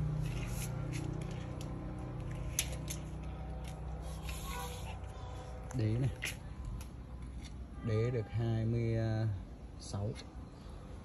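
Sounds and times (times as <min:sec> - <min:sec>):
handling clicks and rustles: 0:00.0 - 0:07.7.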